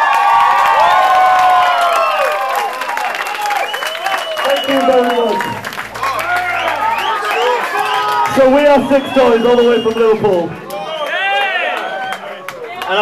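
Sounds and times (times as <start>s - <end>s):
audience cheering and shouting: 0.0s - 13.0s
dense clapping: 0.0s - 13.0s.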